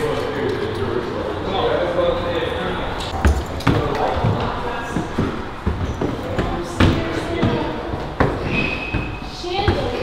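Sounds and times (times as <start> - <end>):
footsteps on hard floor and stairs: 3.1 - 10.0.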